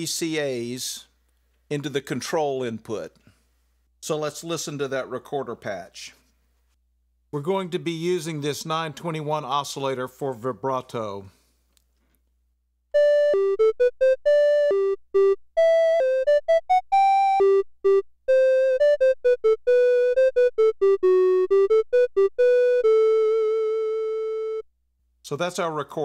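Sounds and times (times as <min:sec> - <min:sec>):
synthesizer melody: 0:13.0 - 0:24.7.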